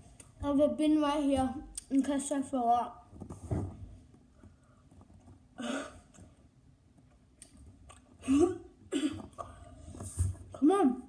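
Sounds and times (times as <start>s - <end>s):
boy's stifled throat noise: 8.2s - 9.4s.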